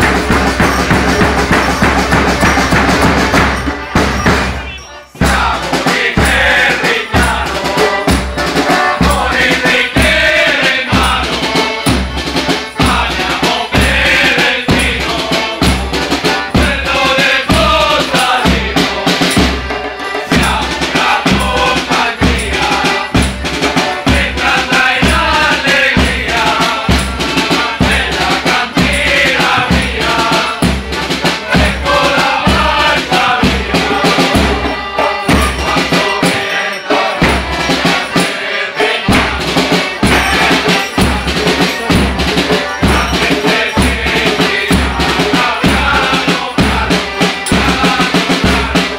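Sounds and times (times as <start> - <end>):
drums and rattling percussion: 0.0 - 48.9
group singing in chorus: 0.0 - 48.9.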